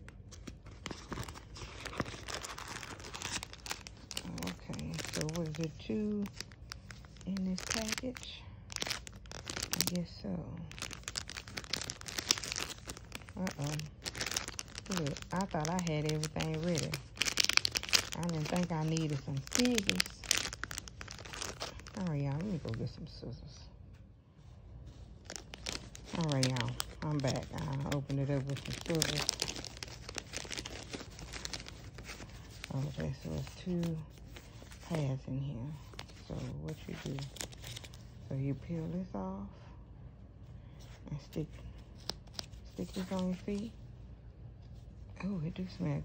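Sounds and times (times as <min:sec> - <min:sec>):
packaging crinkling: 0:00.0 - 0:23.0, 0:24.9 - 0:38.3, 0:41.8 - 0:43.7.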